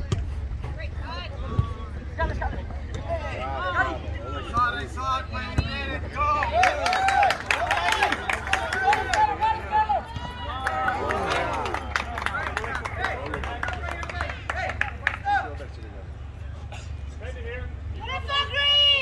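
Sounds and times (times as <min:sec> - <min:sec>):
people shouting and calling out: 0:03.0 - 0:12.0, 0:17.8 - 0:19.0.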